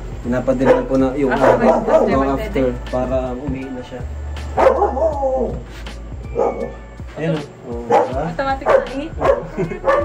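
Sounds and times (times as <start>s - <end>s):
puppy yelping whine: 6.3s - 6.8s.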